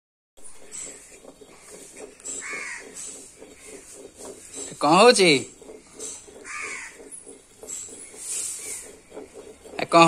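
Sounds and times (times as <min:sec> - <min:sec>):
crow cawing: 0:02.4 - 0:03.1, 0:06.4 - 0:07.1.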